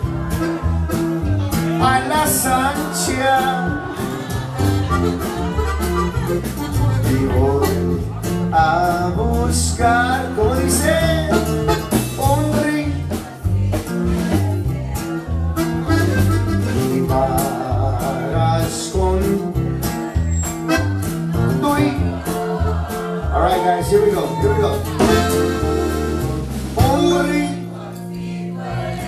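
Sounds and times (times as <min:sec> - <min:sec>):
steady drum beat: 0:00.0 - 0:27.8
bass line: 0:00.0 - 0:29.0
strummed acoustic guitar: 0:00.0 - 0:29.0.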